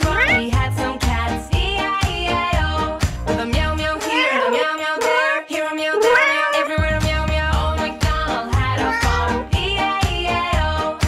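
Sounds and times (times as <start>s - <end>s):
cartoon cat meows: 0.0s - 0.4s, 6.0s - 6.8s, 8.8s - 9.4s
children's song backing: 0.0s - 11.0s.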